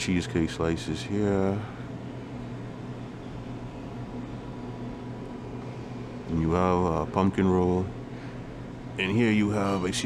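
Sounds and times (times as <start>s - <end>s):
cooling equipment hum and hiss: 0.0s - 10.0s.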